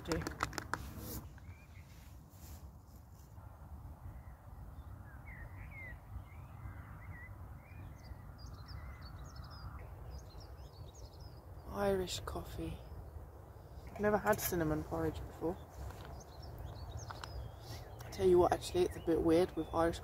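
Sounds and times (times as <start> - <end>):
birds chirping: 0.0 - 2.1, 4.1 - 20.0.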